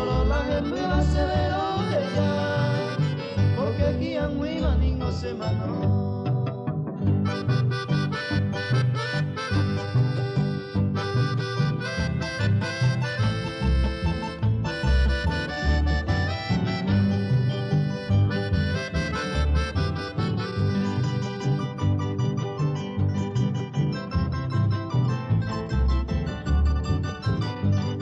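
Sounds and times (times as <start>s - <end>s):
accordion lead: 0.0s - 28.0s
regular bass beat: 0.0s - 28.0s
strummed guitar: 0.0s - 28.0s.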